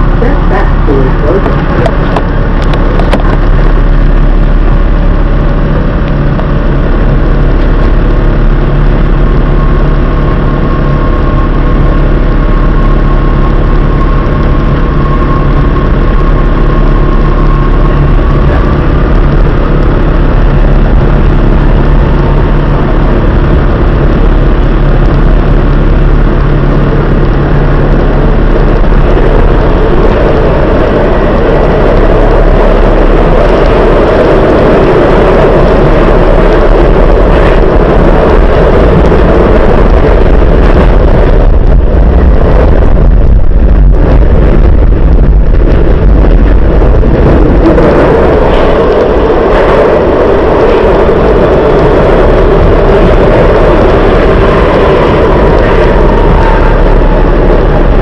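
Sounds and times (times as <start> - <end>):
train hum and whine: 0.0 - 58.0
tunnel rushing noise: 0.0 - 58.0.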